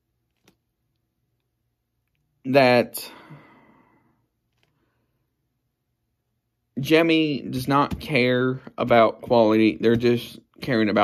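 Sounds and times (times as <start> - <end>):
man sighing: 3.0 - 4.1.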